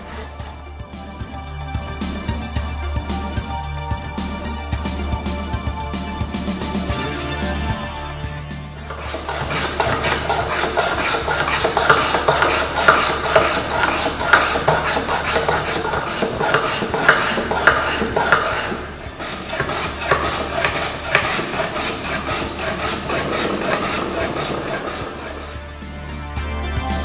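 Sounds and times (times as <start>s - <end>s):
block plane shaving wood: 0.0s - 2.2s, 8.8s - 26.0s.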